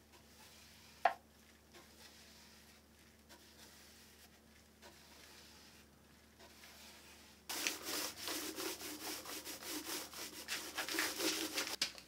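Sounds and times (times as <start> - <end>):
paintbrush rubbing on wood: 0.2 - 11.8.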